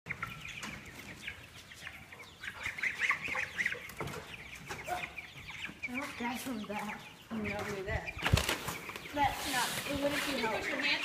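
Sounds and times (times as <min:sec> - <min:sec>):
chicks peeping: 0:00.1 - 0:11.0.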